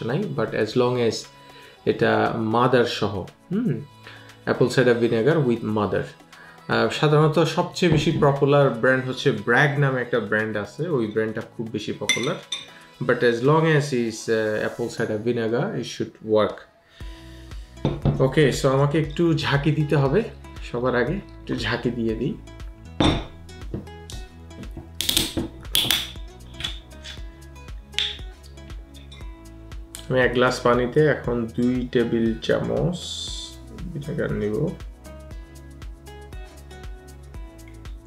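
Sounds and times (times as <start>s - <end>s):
background music: 0.0s - 38.0s.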